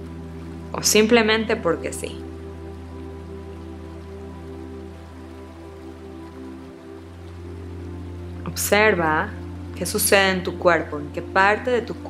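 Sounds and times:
low drone: 0.0 - 12.0
sustained pad tones: 0.0 - 12.0.

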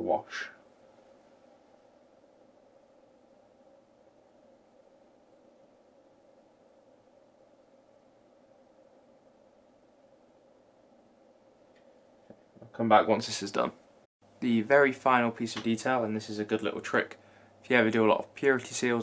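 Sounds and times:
steady hum: 0.0 - 19.0.

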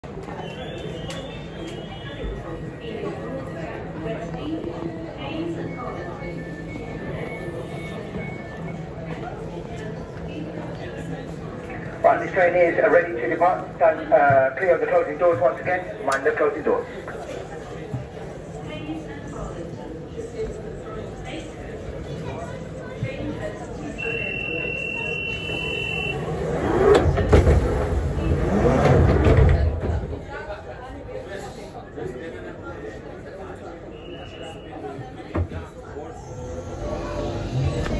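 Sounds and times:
train low hum: 0.0 - 37.9
indistinct voices: 33.7 - 37.9
train rumble: 35.6 - 37.9.

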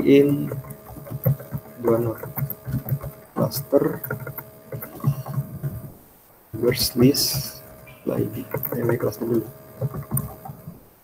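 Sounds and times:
typing on computer keyboard: 0.0 - 5.9, 6.6 - 10.8
faint steady hum: 0.0 - 11.0.

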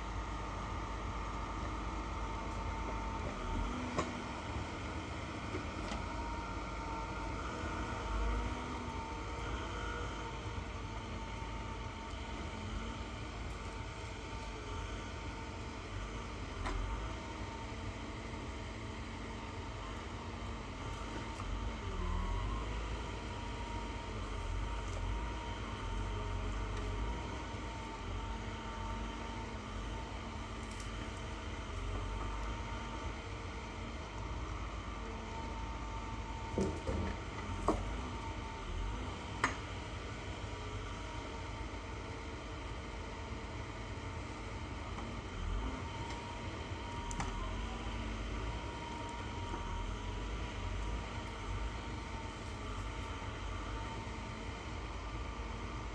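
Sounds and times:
distant forestry machine engine: 0.0 - 55.9
hydraulic crane whine: 0.0 - 55.9.

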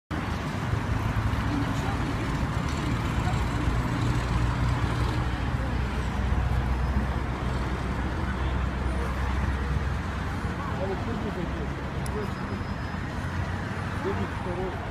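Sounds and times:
road traffic rumble: 0.1 - 14.9.

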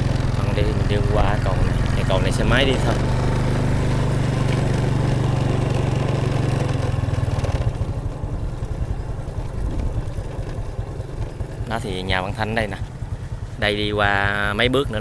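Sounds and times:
small motorcycle engine running: 0.0 - 15.0.

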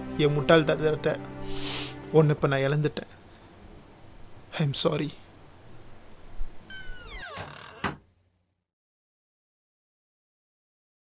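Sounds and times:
door closing knock: 6.7 - 8.0
door hinges squeaking: 6.7 - 8.1.

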